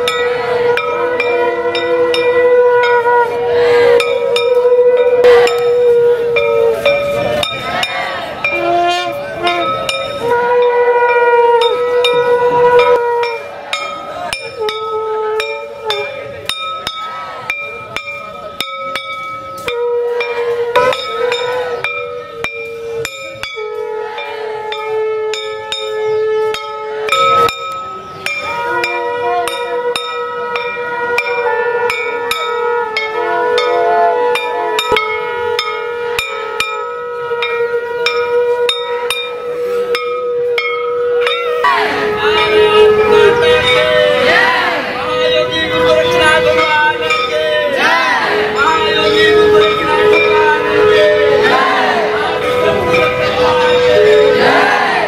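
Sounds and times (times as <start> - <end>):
hand bells clinking: 0.0 - 3.1, 4.0 - 44.4, 45.1 - 54.6
horns blown in long notes: 0.0 - 55.0.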